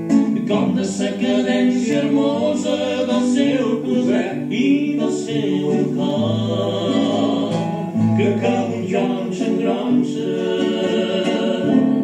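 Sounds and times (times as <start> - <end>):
classical guitar: 0.0 - 12.0
man singing: 0.3 - 12.0.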